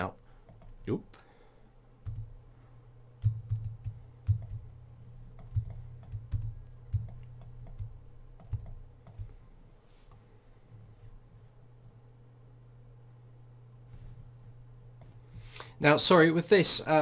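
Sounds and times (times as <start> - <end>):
faint low hum: 0.0 - 17.0
computer keyboard keys clicking: 2.0 - 2.3, 3.2 - 4.7, 5.4 - 9.3.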